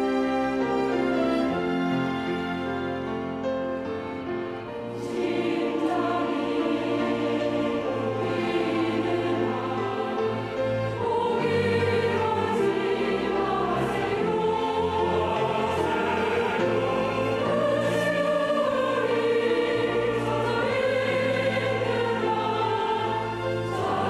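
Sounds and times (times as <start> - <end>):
strings and cello accompanying: 0.0 - 24.0
church choir singing a hymn: 4.0 - 24.0.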